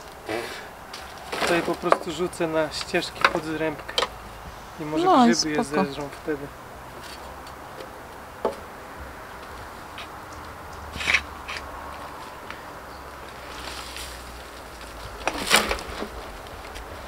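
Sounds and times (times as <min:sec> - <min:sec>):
pitchfork rustling in dry canes: 0:13.3 - 0:17.0.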